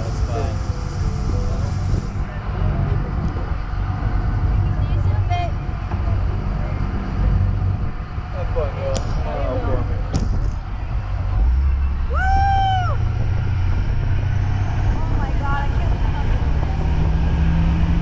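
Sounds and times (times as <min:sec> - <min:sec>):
faint voices: 0:00.0 - 0:17.1
boat engine rumbling: 0:00.0 - 0:18.0.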